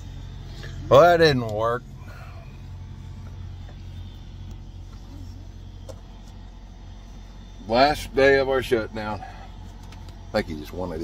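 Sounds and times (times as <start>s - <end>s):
truck engine humming: 0.0s - 11.0s.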